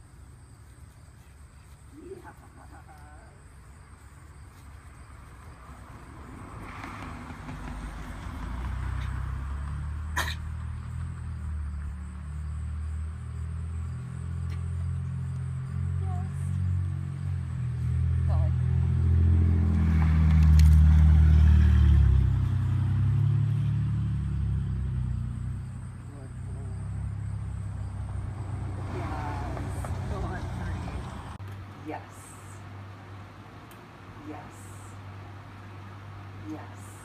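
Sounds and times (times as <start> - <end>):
car engine passing: 5.5 - 37.0.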